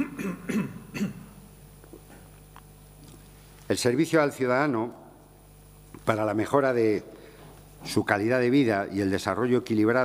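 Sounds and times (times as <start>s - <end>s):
man clearing his throat: 0.0s - 1.5s.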